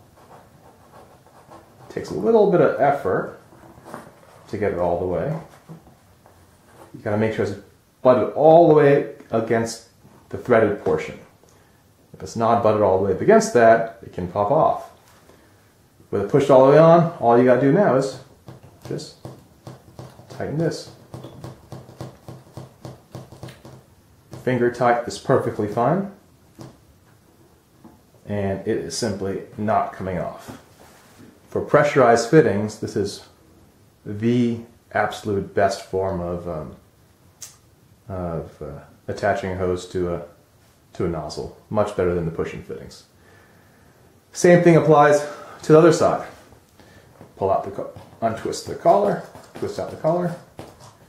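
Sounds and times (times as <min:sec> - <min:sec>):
person breathing: 0:43.2 - 0:44.1, 0:45.2 - 0:45.6, 0:46.8 - 0:47.2
plastic tube handling: 0:47.2 - 0:51.0.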